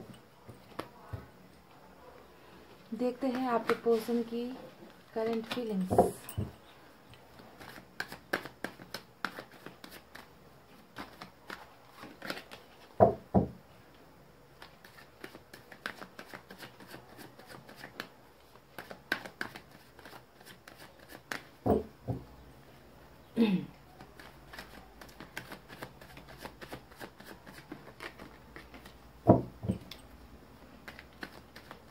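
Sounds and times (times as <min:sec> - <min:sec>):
cards being shuffled: 0:03.1 - 0:04.3, 0:04.9 - 0:05.9, 0:07.3 - 0:13.0, 0:14.6 - 0:21.6, 0:23.9 - 0:29.0, 0:30.8 - 0:31.9.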